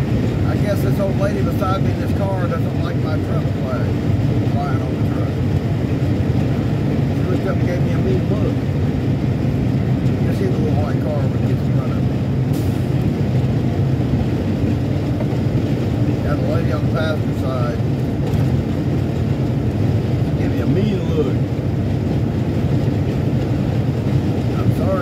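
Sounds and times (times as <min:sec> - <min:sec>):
truck engine and road noise: 0:00.0 - 0:25.0.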